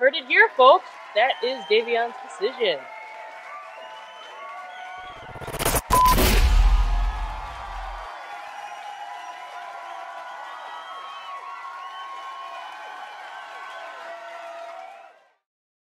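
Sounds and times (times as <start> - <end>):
crowd cheering and chattering: 0.0 - 14.2
deep bass music hit: 5.2 - 8.0.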